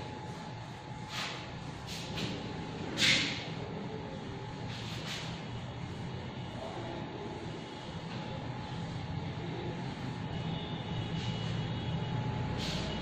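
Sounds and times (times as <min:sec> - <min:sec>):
low mechanical rumble and hum: 0:00.0 - 0:13.0.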